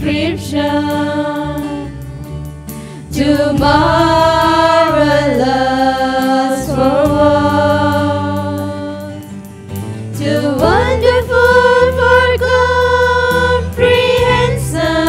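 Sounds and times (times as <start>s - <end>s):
women singing worship song: 0.0s - 2.2s, 3.0s - 9.3s, 10.1s - 15.0s
acoustic guitar: 0.0s - 15.0s
electric bass: 0.0s - 15.0s.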